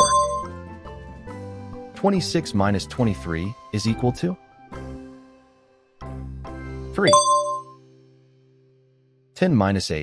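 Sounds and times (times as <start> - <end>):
bright chime: 0.0 - 0.5, 7.0 - 7.7.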